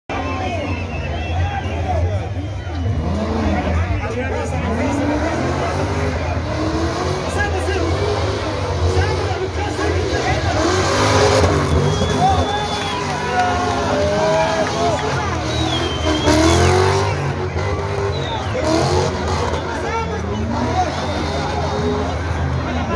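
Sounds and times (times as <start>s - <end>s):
crowd chatter: 0.1s - 22.9s
car engine revving: 1.7s - 22.9s.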